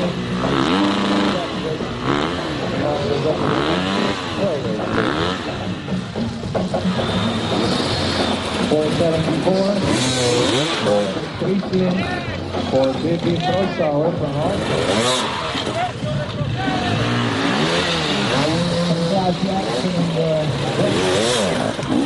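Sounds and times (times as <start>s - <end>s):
dirt bike engines revving: 0.0s - 22.0s.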